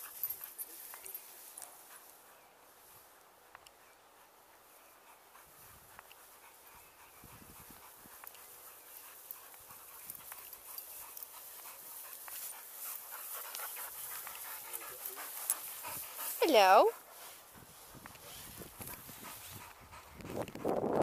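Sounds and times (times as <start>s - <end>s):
dog panting: 0.0s - 2.4s, 3.7s - 21.0s.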